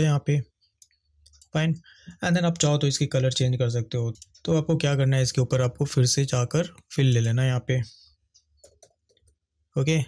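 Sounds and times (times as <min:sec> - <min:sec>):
man speaking: 0:00.0 - 0:00.6, 0:01.4 - 0:08.2, 0:09.7 - 0:10.0.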